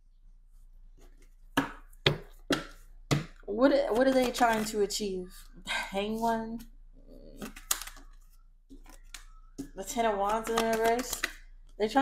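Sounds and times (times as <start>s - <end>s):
cards being handled: 3.9s - 4.8s, 7.3s - 11.4s.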